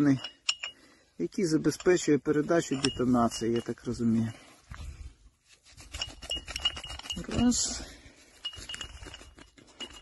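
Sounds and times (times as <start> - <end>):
light clinks and clicks from handling: 0.0 - 4.4, 6.0 - 10.0.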